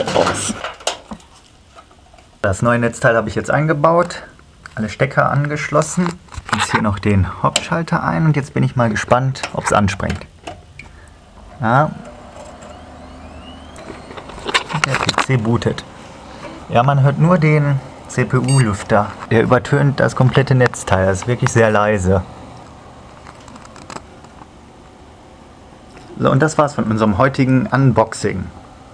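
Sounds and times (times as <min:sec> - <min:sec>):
computer fan hum: 0:00.0 - 0:28.9
fan whine rising in pitch: 0:11.2 - 0:28.9.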